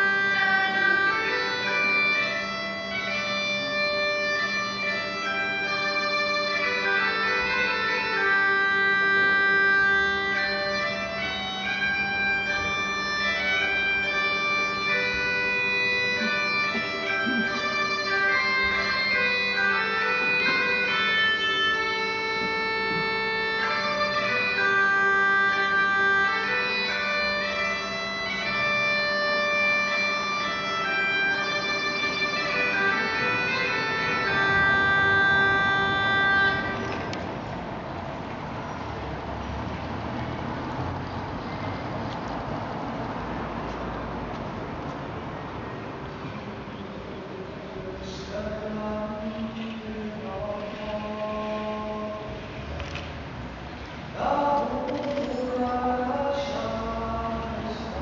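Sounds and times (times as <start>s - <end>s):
solo bagpipes playing slow tune: 0.0s - 38.8s.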